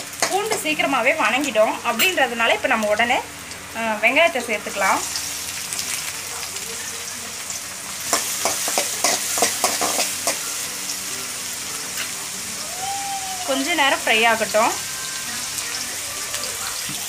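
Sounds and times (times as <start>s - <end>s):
garlic and onion sizzling in oil: 0.0s - 17.0s.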